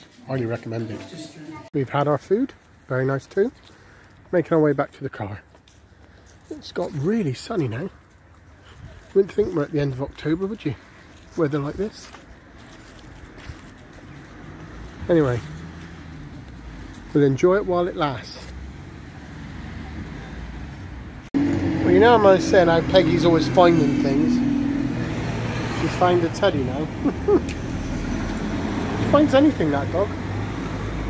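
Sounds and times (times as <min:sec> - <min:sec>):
distant road traffic hum: 0:00.0 - 0:31.0.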